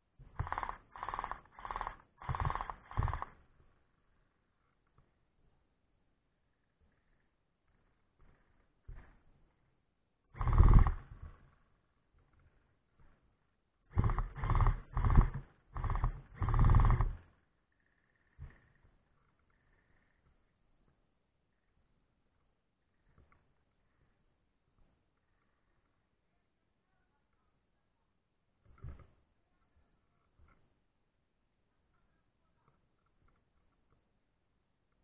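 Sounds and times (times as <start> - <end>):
gel blaster full-auto bursts: 0.4 - 3.4, 10.4 - 11.0, 13.9 - 17.2.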